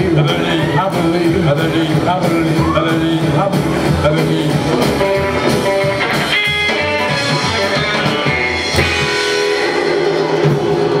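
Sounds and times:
person singing: 0.0 - 8.3
drum kit: 0.0 - 11.0
guitars strumming: 0.0 - 11.0
live rockabilly band: 0.0 - 11.0.

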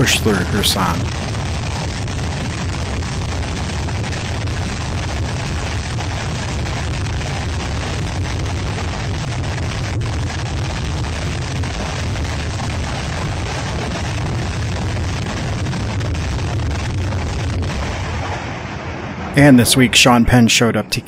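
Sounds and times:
artillery explosions rumbling: 0.0 - 20.6.

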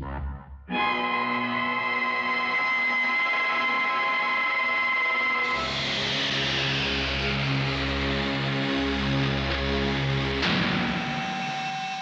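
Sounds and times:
film score chord: 0.7 - 10.6
low drone: 0.7 - 11.9.

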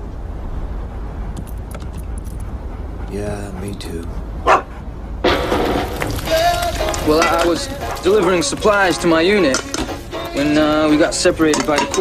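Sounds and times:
dog vocalizing: 1.8 - 5.2
dog barking: 4.4 - 4.8.

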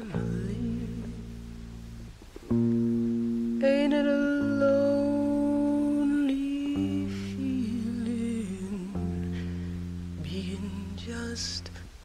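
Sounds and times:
held chords: 0.0 - 12.0
person singing slow song: 0.0 - 12.0.

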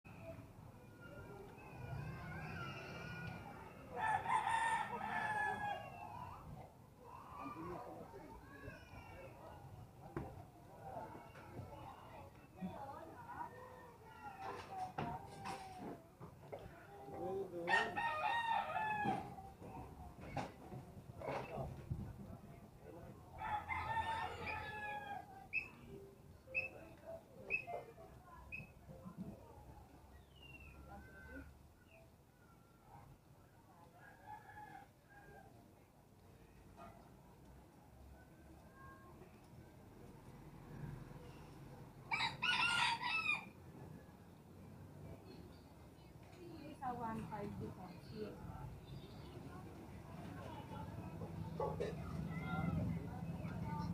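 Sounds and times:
rooster crowing: 4.0 - 6.0, 17.7 - 19.3, 23.4 - 25.2, 42.1 - 43.5.

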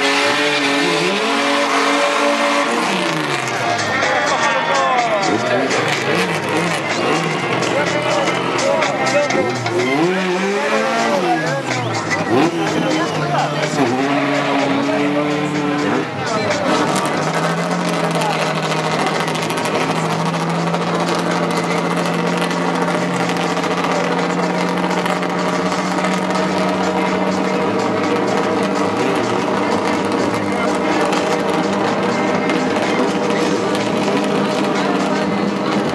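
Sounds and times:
crowd noise: 0.0 - 35.9
drag car engine idling: 0.0 - 35.9.

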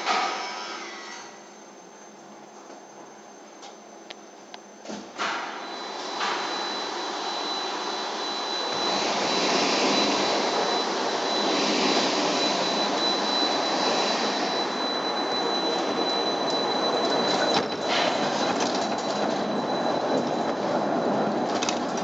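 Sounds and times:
thin high whine: 0.0 - 22.0
rail car rolling on track: 14.5 - 22.0.

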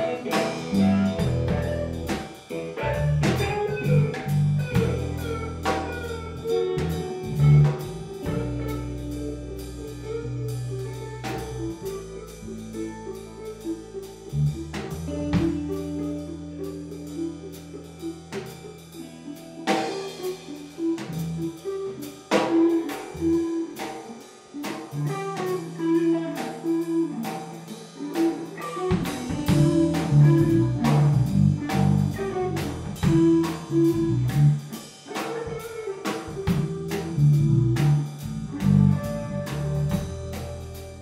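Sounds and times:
bass guitar: 0.0 - 41.0
drum kit beat: 0.0 - 41.0
electric guitar lead: 0.0 - 41.0
keyboard: 0.0 - 41.0.

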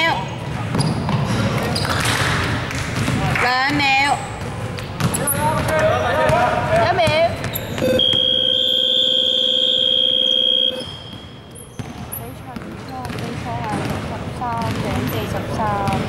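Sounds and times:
scoreboard buzzer blast: 7.8 - 11.3.

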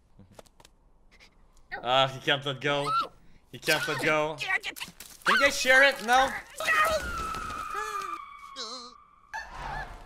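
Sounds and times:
cartoon high squeal: 6.6 - 10.0.

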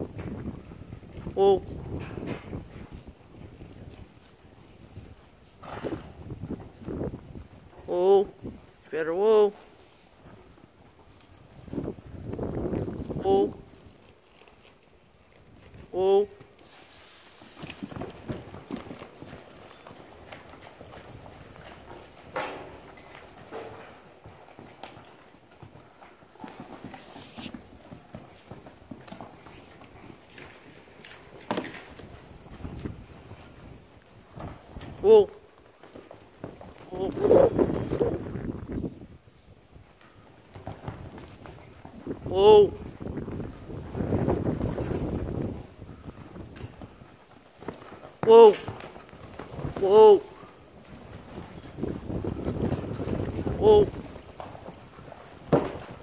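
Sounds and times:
horse hooves in sand: 0.0 - 56.0.

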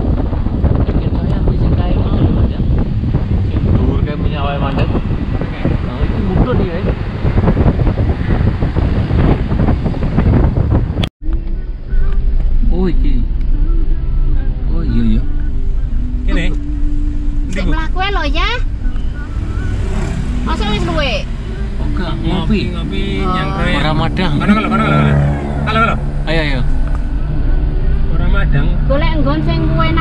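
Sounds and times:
car cabin rumble: 0.0 - 30.0
person speaking: 21.8 - 26.7.

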